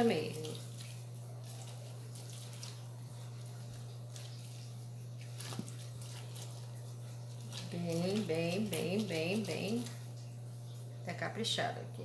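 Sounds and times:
wet squishing and dripping: 0.0s - 11.0s
steady low hum: 0.0s - 12.0s.

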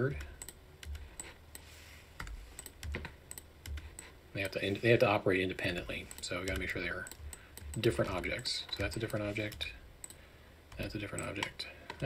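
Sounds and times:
keyboard keys clicking: 5.6s - 11.6s.

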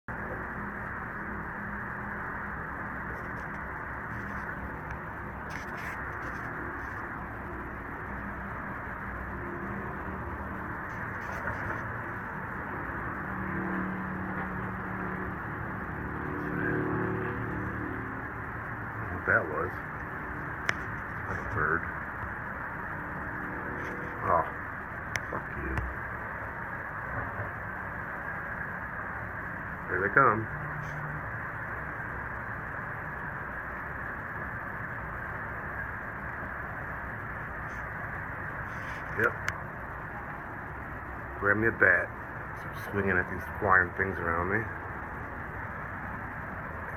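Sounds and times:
low hum: 0.1s - 46.9s
low outdoor rush: 0.1s - 46.9s.

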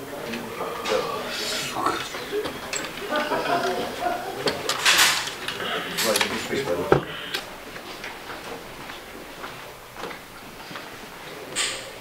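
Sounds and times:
low indistinct voices: 0.0s - 7.7s.

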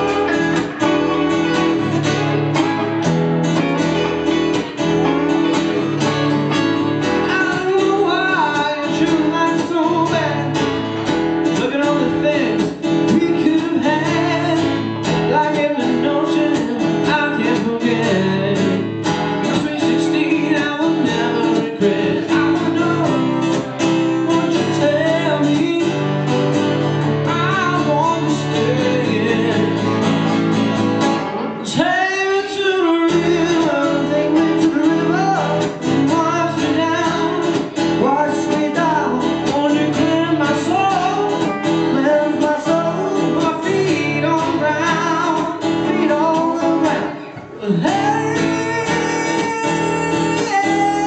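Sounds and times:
person singing: 0.0s - 2.6s, 3.6s - 30.1s, 31.4s - 51.0s
acoustic guitars playing: 0.0s - 51.0s.

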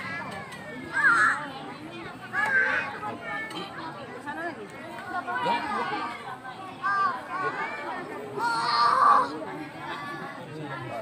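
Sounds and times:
people and children talking: 0.0s - 11.0s.

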